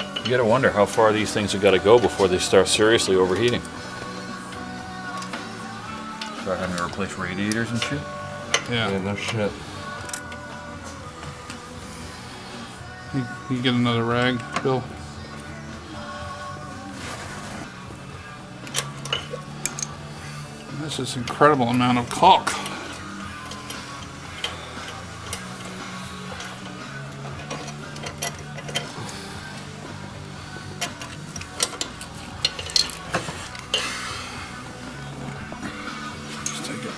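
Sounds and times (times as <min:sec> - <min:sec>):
background music: 0:00.0 - 0:36.9
metal pick clicking and scraping: 0:18.6 - 0:20.0, 0:21.3 - 0:29.8, 0:30.7 - 0:34.0.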